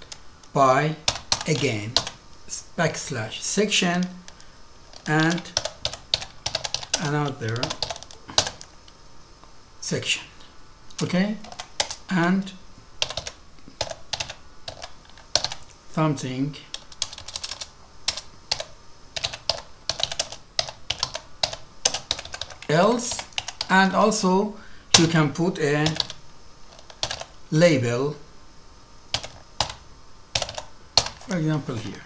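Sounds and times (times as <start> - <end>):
keyboard keys clicking: 5.0 - 8.7, 16.7 - 23.7, 25.8 - 27.3, 30.4 - 31.2.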